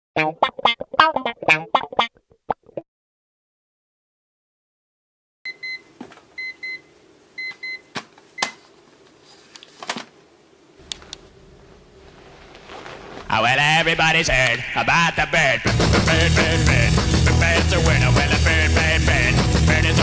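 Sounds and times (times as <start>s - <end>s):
staccato sung syllables: 13.5s - 20.0s.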